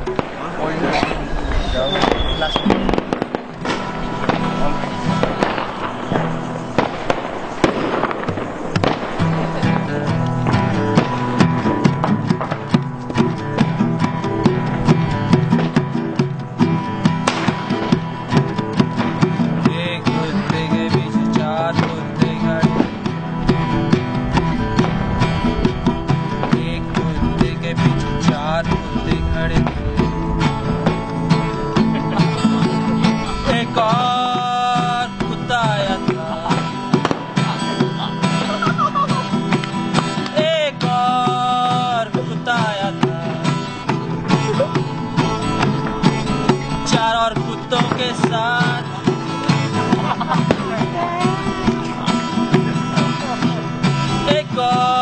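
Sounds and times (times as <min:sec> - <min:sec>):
acoustic guitars strumming: 0:00.0 - 0:55.0
firecrackers cracking and banging: 0:00.0 - 0:55.0
hand percussion: 0:02.6 - 0:55.0.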